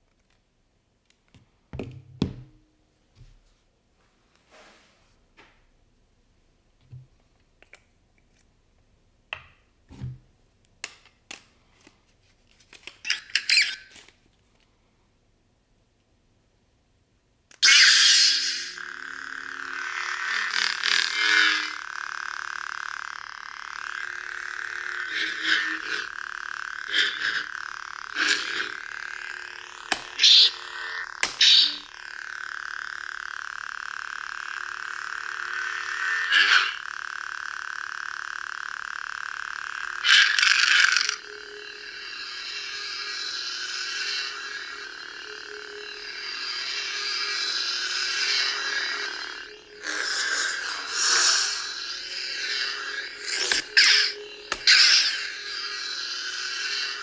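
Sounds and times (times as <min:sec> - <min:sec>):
lightsaber electric hum: 0:17.5 - 0:57.0
toy lightsaber igniting: 0:17.5 - 0:57.0
loud lightsaber burst: 0:40.0 - 0:57.0.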